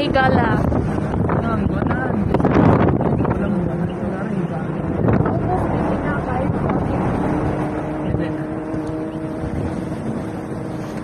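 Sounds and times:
car road and wind noise: 0.0s - 11.0s.

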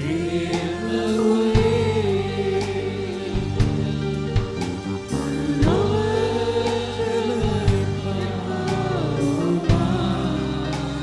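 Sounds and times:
keyboard accompaniment: 0.0s - 11.0s
man singing into a microphone: 0.0s - 11.0s.

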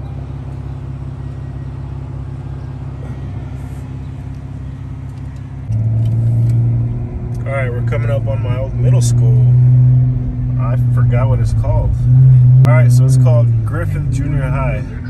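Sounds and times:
car engine and exhaust drone: 0.0s - 15.0s.

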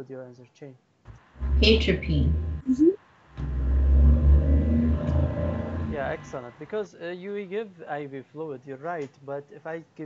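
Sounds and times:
loud steady low rumble: 1.4s - 6.6s.

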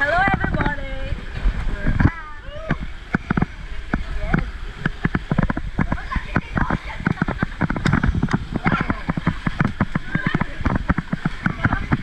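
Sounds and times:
water slapping against inflatable tube: 0.0s - 12.0s.

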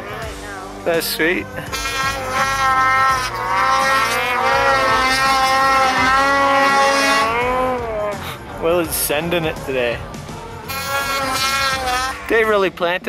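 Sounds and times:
snowmobile engine revving: 0.0s - 10.0s, 10.6s - 13.0s.

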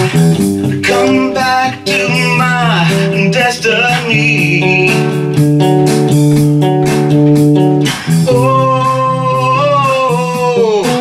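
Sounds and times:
acoustic guitar: 0.0s - 11.0s
wordless singing: 0.8s - 5.3s, 8.2s - 11.0s.

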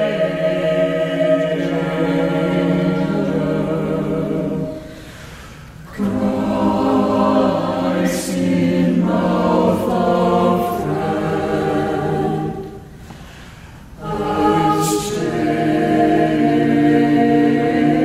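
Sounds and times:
church choir singing a hymn: 0.0s - 18.0s.

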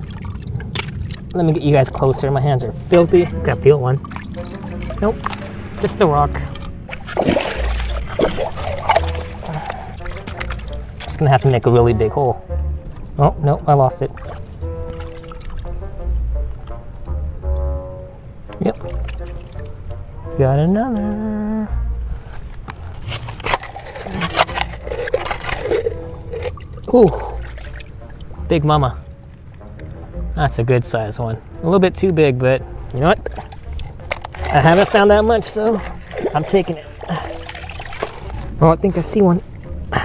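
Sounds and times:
hands splashing in muddy water: 0.0s - 1.8s, 6.5s - 11.6s, 14.1s - 15.7s, 22.9s - 28.3s, 33.2s - 38.6s
background music: 0.0s - 40.0s
stones clacking and scraping: 22.3s - 26.9s, 33.2s - 38.6s.

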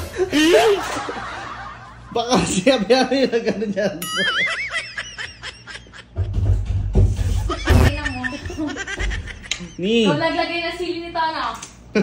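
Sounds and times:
person laughing: 0.0s - 1.3s, 2.2s - 6.2s, 7.4s - 10.0s.

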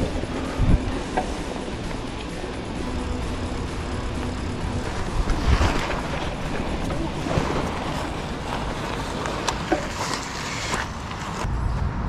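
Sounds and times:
wind buffeting microphone: 0.0s - 10.1s
mountain bike tyres rumbling: 0.0s - 11.6s.

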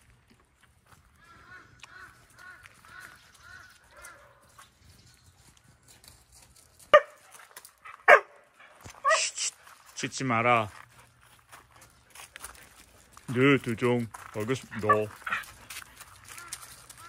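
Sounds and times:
dog barking: 6.9s - 7.2s, 8.0s - 9.3s
dog yelping: 7.9s - 8.4s, 14.8s - 15.1s.

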